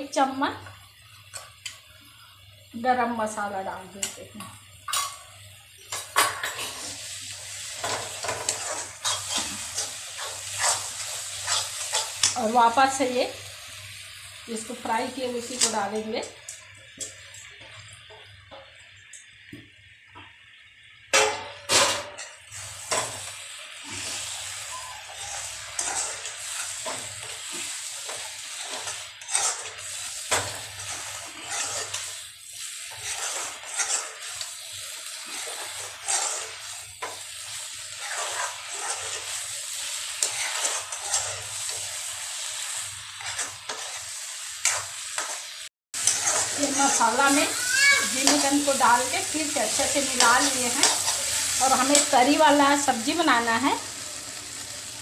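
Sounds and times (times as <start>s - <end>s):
food sizzling in oil: 0.0s - 55.0s
spatula scraping pan: 7.7s - 13.0s, 22.5s - 52.7s.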